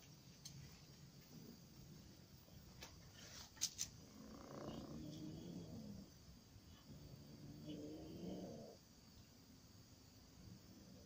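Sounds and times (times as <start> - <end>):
cat growling low: 4.0 - 6.2, 6.8 - 8.8.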